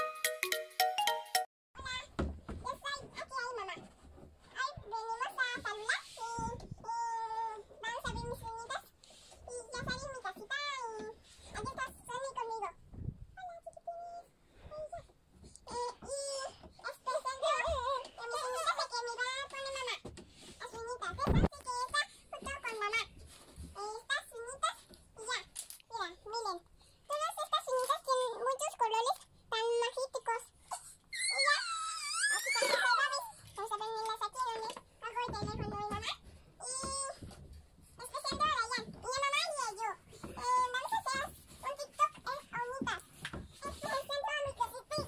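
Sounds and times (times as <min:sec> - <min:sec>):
child squealing: 0:31.1 - 0:33.3.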